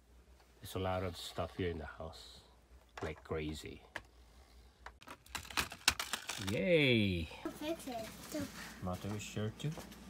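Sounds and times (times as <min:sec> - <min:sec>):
plastic toys clicking and tapping: 0:04.8 - 0:06.6.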